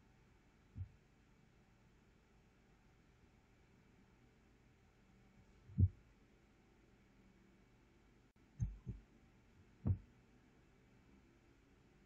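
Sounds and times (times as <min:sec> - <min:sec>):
soft low thuds: 0:05.7 - 0:06.0, 0:08.6 - 0:09.1, 0:09.8 - 0:10.1.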